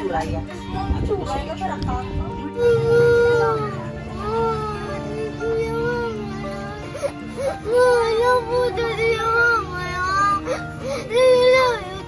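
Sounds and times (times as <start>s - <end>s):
girl crying and wailing: 2.5s - 12.0s.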